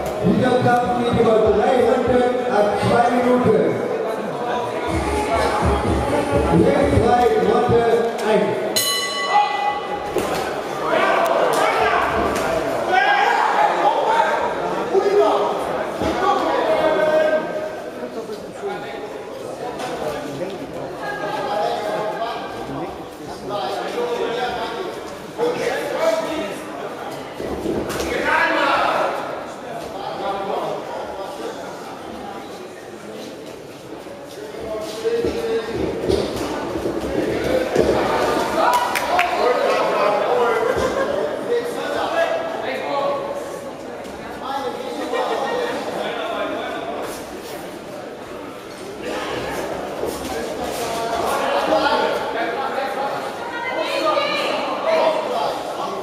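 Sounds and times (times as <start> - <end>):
voices shouting in echoing hall: 0.0 - 17.9, 37.6 - 47.0, 50.4 - 56.0.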